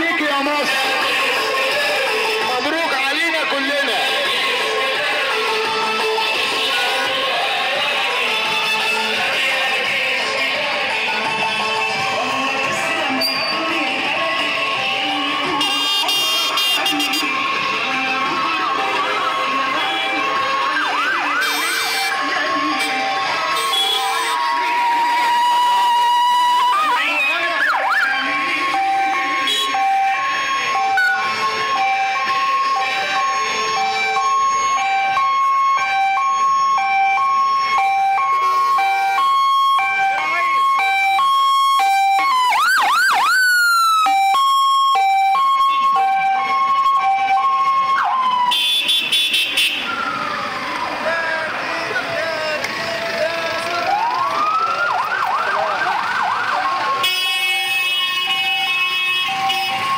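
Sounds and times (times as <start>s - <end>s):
voices shouting: 0.0s - 39.2s, 45.6s - 59.9s
fire engine siren: 0.0s - 59.9s.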